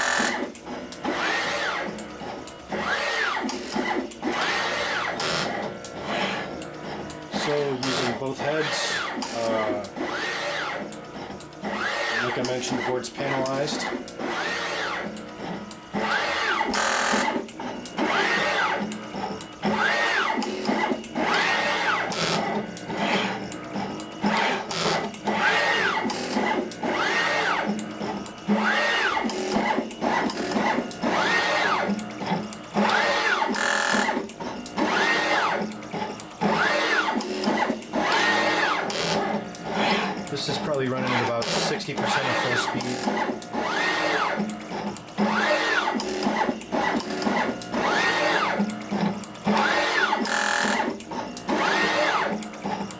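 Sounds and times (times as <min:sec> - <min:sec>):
gantry motors whining: 0:00.0 - 0:52.9
machine sharp clicks: 0:00.0 - 0:52.9.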